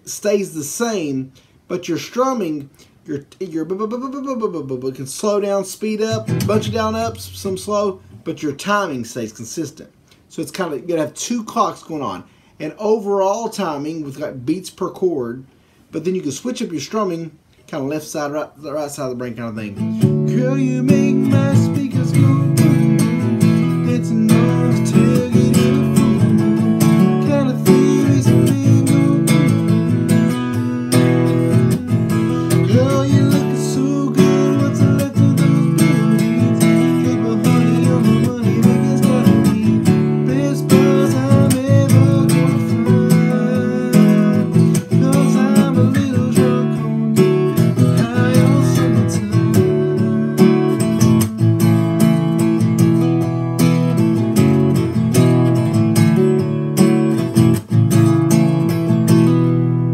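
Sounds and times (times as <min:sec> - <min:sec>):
acoustic guitar strumming: 0:05.2 - 0:09.3, 0:19.5 - 0:59.9.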